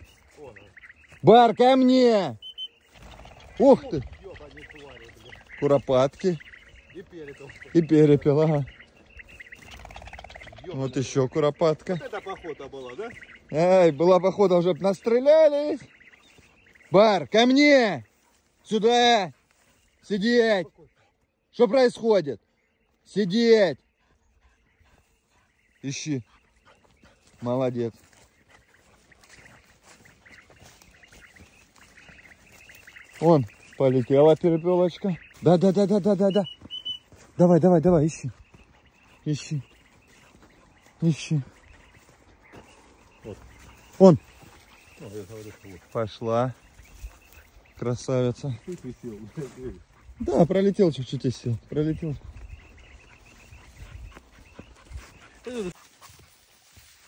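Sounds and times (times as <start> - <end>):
distant bird chirps: 0.0 - 57.0
open field ambience: 0.0 - 57.0.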